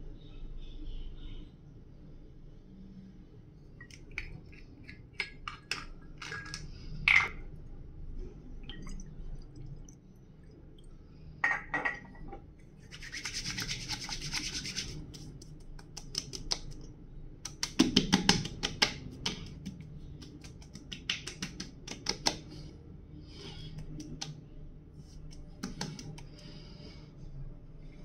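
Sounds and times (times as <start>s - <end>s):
palms rubbing together: 12.8s - 16.8s, 17.5s - 22.7s, 23.4s - 24.3s, 25.0s - 26.5s
pats and slaps on skin: 13.0s - 22.5s, 23.8s - 24.4s, 25.2s - 26.4s.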